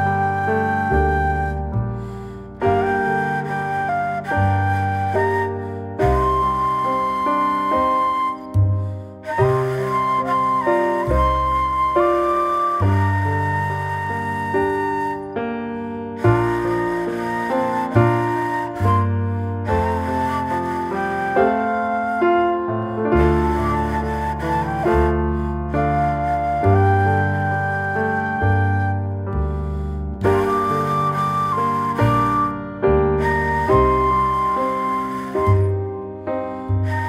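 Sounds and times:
flute-like melody: 0:00.0 - 0:37.0.

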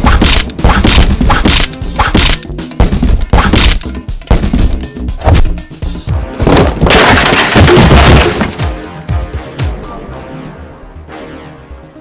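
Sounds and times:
background music: 0:00.0 - 0:12.0
crashing impact: 0:06.4 - 0:08.8.

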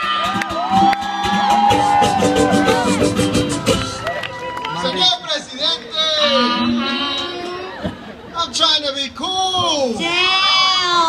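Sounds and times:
band music: 0:00.0 - 0:08.2
concert crowd voices: 0:00.0 - 0:11.0.

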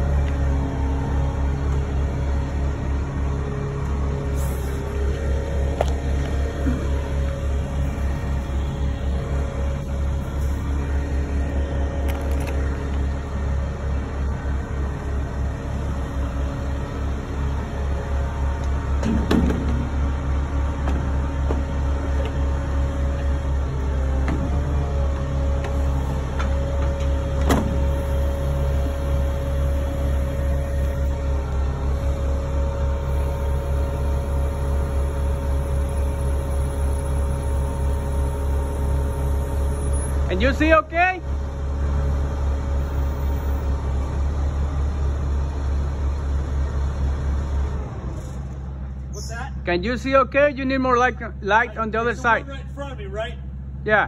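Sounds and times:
aerial lift whine: 0:00.0 - 0:40.3
truck engine rumbling: 0:00.0 - 0:54.0.

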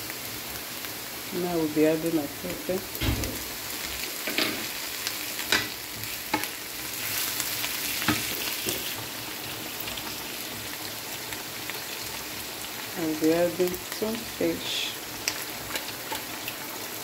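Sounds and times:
food sizzling in oil: 0:00.0 - 0:17.0.

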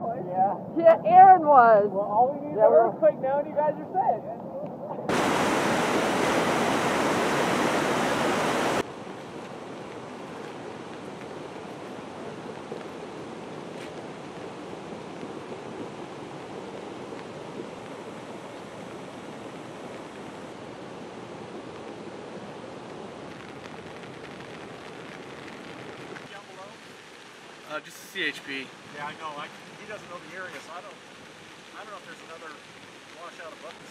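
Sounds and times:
steady rushing noise: 0:00.0 - 0:27.0.

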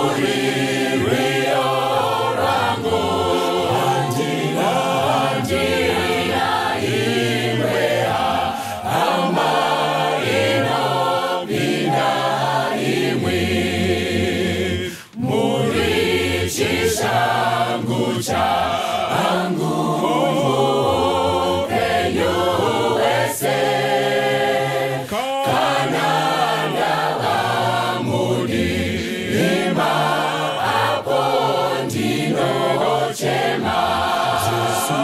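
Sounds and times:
mixed choir singing: 0:00.0 - 0:35.0.

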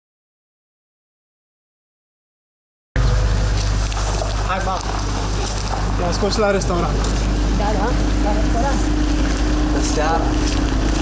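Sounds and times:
low outdoor rumble: 0:03.0 - 0:11.0.

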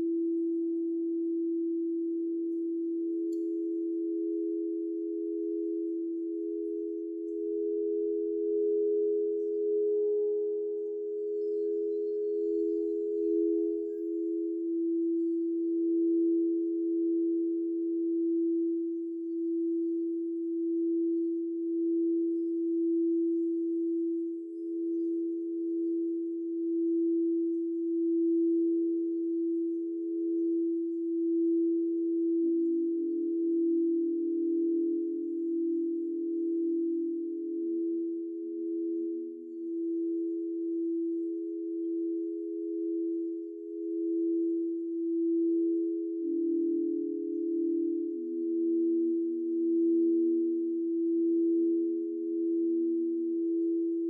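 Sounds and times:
low bowl tone: 0:00.0 - 0:54.0
singing bowls ringing: 0:02.4 - 0:20.4, 0:39.3 - 0:54.0.

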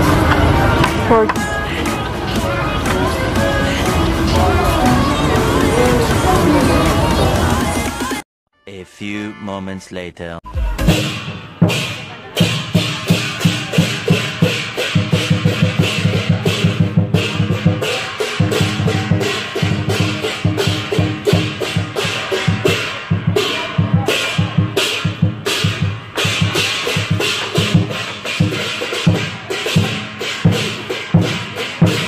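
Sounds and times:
big drum beaten rapidly: 0:10.5 - 0:32.0
cymbal crashes: 0:10.8 - 0:32.0.

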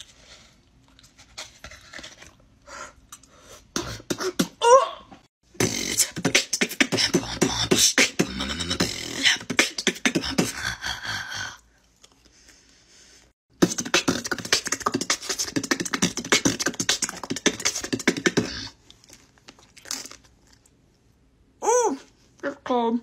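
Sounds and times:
woman beatboxing: 0:03.8 - 0:05.0, 0:05.6 - 0:11.4, 0:13.6 - 0:18.8.

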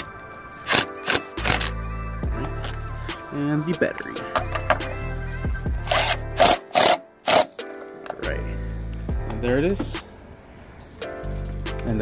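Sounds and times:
background music: 0:00.0 - 0:12.0
power drill spinning: 0:00.6 - 0:01.8, 0:05.8 - 0:07.5.

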